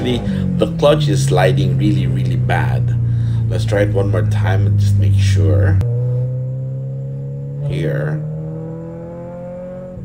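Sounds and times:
car engine revving up in gear: 0.0s - 10.0s.

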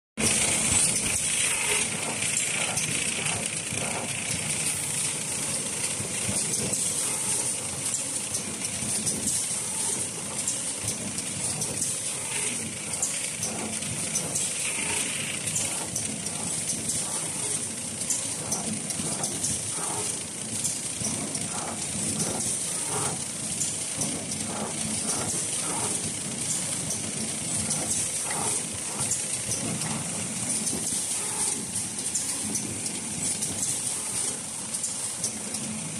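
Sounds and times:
machine running with steady hiss: 0.2s - 35.9s
mechanism clicking and knocking: 0.2s - 35.9s.

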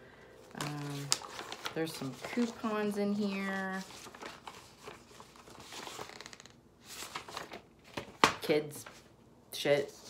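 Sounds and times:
paper and card rustling: 0.4s - 9.1s.

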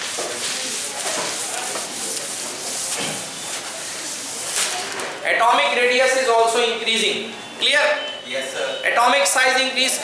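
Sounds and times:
duster rubbing on whiteboard: 0.0s - 4.6s.

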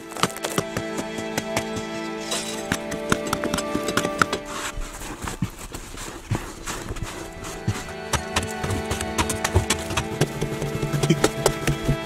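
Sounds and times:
instrumental background music: 0.0s - 5.7s, 6.4s - 12.0s
hand tool striking hard earth: 0.0s - 12.0s.

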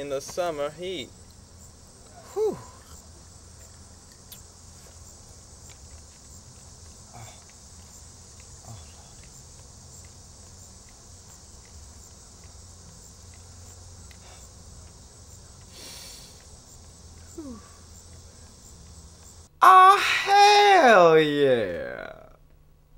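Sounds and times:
high-pitched insect chorus: 0.0s - 22.4s
faint soft ticks: 9.1s - 19.4s.

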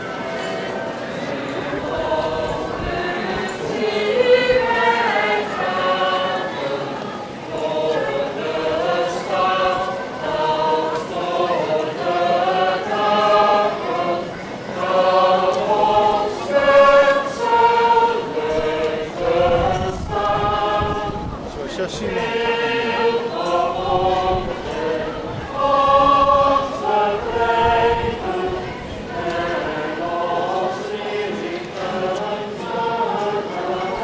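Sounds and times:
choir singing slow melody: 0.0s - 34.0s.

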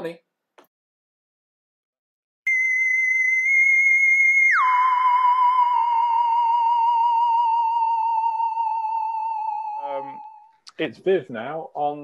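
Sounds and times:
electronic theremin-like tone: 2.5s - 10.6s.

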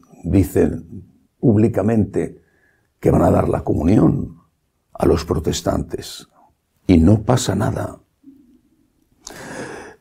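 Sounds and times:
man breathing: 9.2s - 10.0s.

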